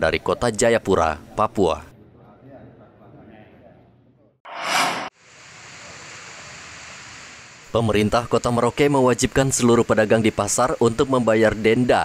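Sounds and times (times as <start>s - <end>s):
whooshing transition effect: 4.5s - 5.2s
steady background hiss: 5.2s - 12.0s.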